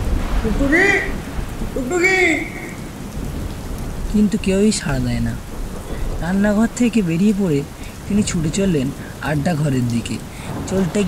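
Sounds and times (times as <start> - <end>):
rain downpour hiss: 0.0 - 11.0
thunder rumble: 0.0 - 11.0
person speaking: 0.4 - 2.9, 6.2 - 11.0.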